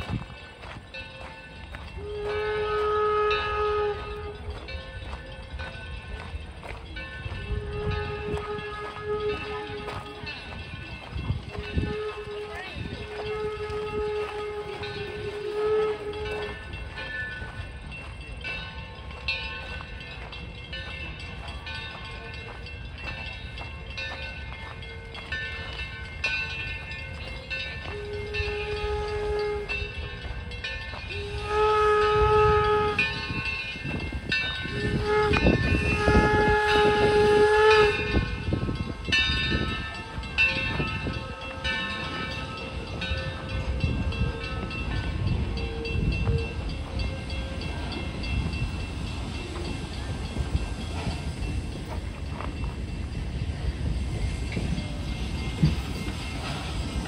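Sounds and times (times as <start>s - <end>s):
locomotive rumble and hiss: 0.0s - 57.0s
steam whistle chord: 1.8s - 5.2s, 7.3s - 10.6s, 11.4s - 17.4s, 27.8s - 33.8s, 34.5s - 38.8s.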